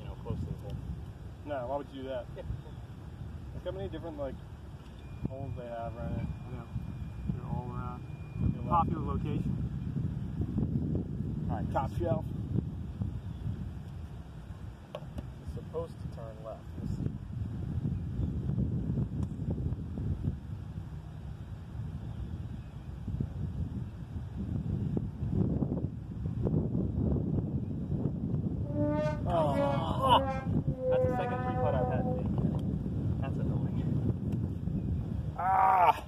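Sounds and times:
wind rumbling on microphone: 0.0 - 36.0
person's voice bursts: 29.2 - 32.2.

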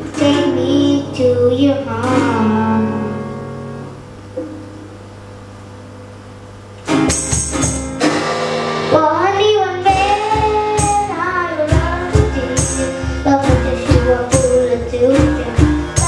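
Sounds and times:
girl singing: 0.0 - 3.3, 8.9 - 16.0
music with beat and tambourine: 6.8 - 8.9, 9.9 - 16.0.

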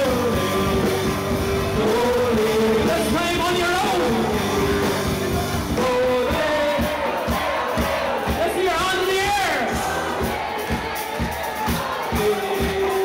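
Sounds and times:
folk-rock band playing: 0.0 - 13.0
steady drumbeat: 0.0 - 13.0
voices singing and shouting: 0.0 - 13.0
audience singing along: 3.9 - 13.0.

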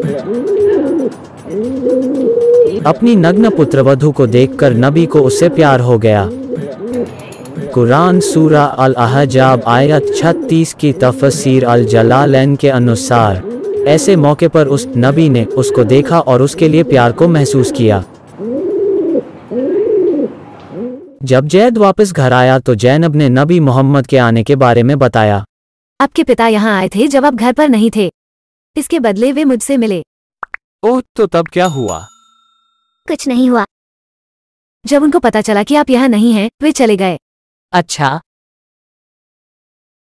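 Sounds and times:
pigeons cooing: 0.0 - 21.2.

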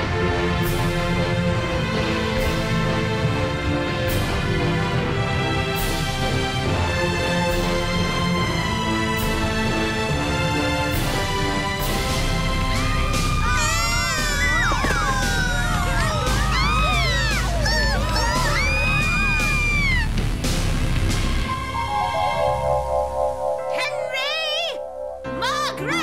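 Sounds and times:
music cue of held notes: 21.4 - 26.0.

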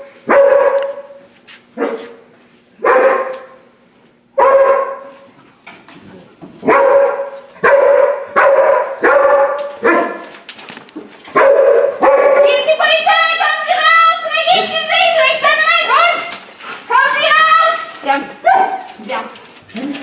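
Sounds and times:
dog barking echoing in hallway: 0.0 - 2.2, 2.8 - 3.7, 4.4 - 5.3, 6.6 - 10.5, 11.3 - 13.8, 14.4 - 19.4.

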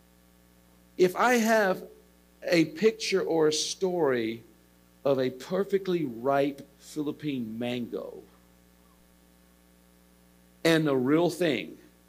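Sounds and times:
faint electrical hum: 0.0 - 12.0
man's voice: 1.0 - 4.4, 5.1 - 8.2, 10.7 - 11.8.

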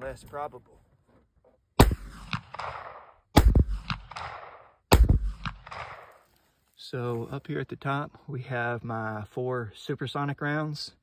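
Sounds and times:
gunshot echo rolling off: 1.8 - 6.3
rifle shots: 1.8 - 6.3.

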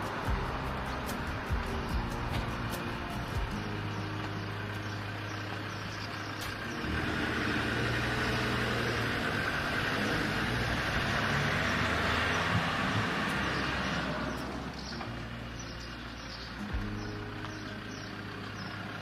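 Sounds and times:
car engine and tyre noise: 0.0 - 19.0.

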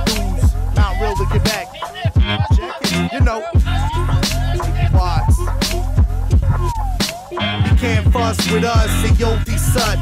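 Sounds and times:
hip hop beat with synth swoops: 0.0 - 10.0.

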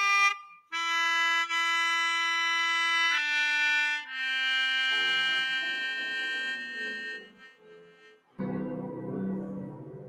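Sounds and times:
melodica playing: 0.0 - 8.4.

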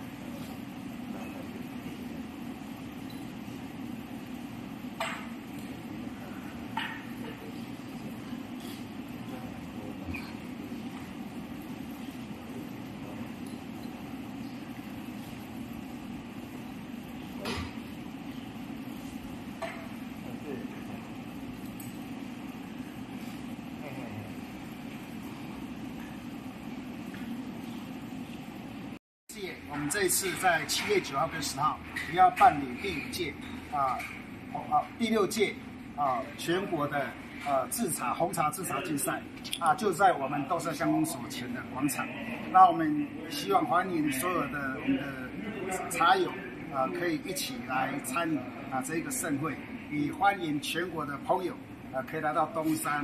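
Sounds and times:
room noise: 0.0 - 53.0
steady low hum: 0.0 - 53.0.

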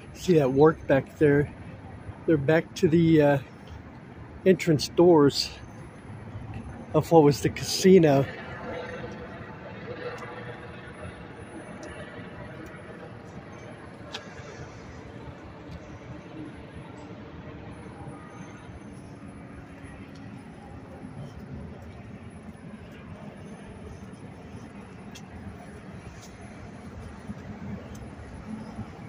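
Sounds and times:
street traffic rumble: 0.0 - 29.0.

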